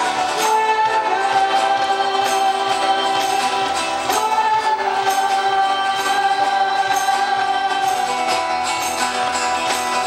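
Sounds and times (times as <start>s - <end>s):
acoustic guitar bass and keyboard: 0.0s - 10.0s
cajon beat: 0.0s - 10.0s
women singing long note: 0.4s - 8.3s.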